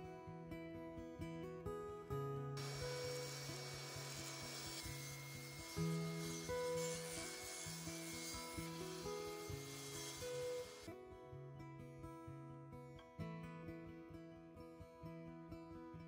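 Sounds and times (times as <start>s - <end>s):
acoustic guitar music: 0.0s - 16.0s
table saw cutting wood: 2.6s - 10.9s.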